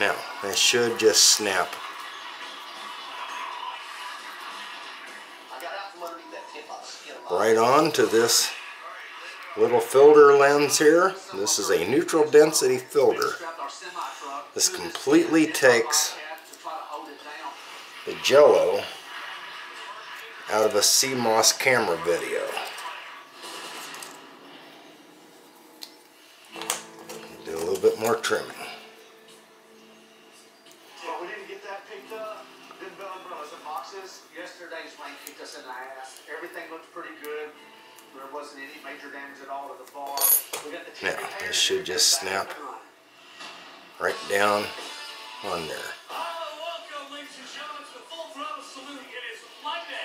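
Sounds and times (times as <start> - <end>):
man talking: 0.0 - 1.8, 6.9 - 19.0, 20.5 - 22.8, 27.4 - 28.8, 38.2 - 42.8, 44.0 - 44.8, 45.4 - 50.0
television music: 0.0 - 50.0
television voice: 0.0 - 50.0.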